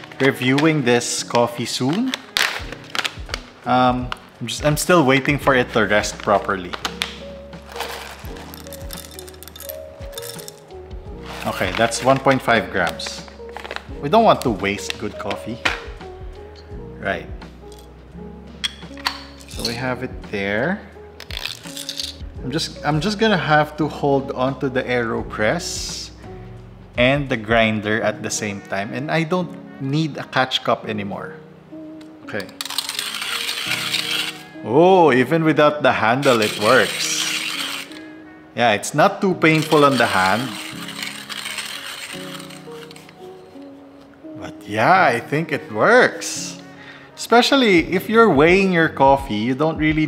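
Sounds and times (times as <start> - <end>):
background music with held notes: 0.0 - 50.0
coffee beans pouring into grinder: 32.6 - 34.4, 36.2 - 38.0, 39.5 - 43.0.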